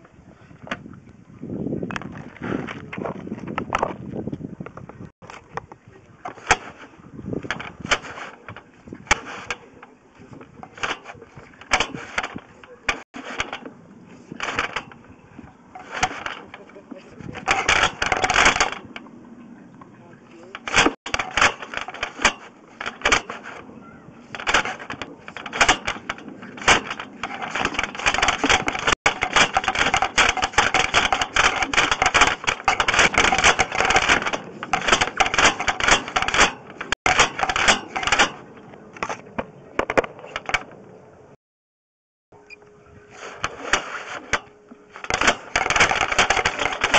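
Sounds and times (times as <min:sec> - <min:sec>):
cable rattling in drain pipe: 0:01.9 - 0:19.1, 0:20.3 - 0:23.6, 0:24.2 - 0:39.2, 0:43.2 - 0:46.9.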